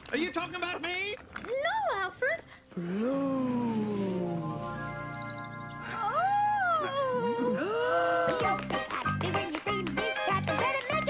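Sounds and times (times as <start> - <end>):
high voice-like wail: 2.8 - 4.6, 5.9 - 8.4
music with held note: 2.8 - 6.6.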